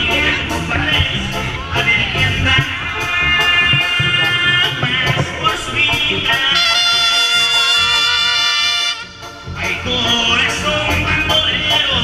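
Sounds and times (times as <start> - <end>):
brass notes: 0.0 - 12.0
electric bass: 0.0 - 12.0.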